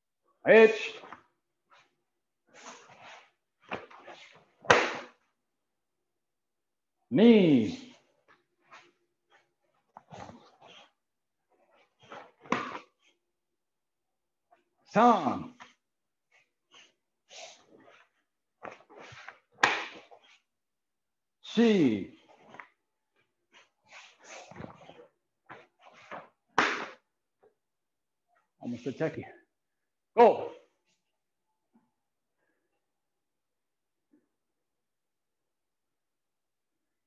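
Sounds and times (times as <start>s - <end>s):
clothing rustles: 1.0s - 5.4s, 7.8s - 13.3s, 15.6s - 20.6s, 22.1s - 27.6s
karate strike crack: 4.7s - 5.2s, 19.6s - 20.1s, 26.6s - 27.0s.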